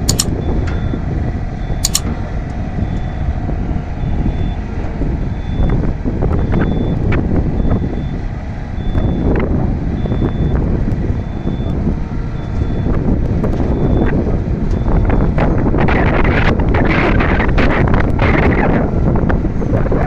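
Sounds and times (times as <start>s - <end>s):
high electronic warning beeps: 0.0s - 2.1s, 2.8s - 3.4s, 4.0s - 4.6s, 5.2s - 8.2s, 8.8s - 13.0s, 13.7s - 16.5s
wind buffeting microphone: 0.0s - 20.0s.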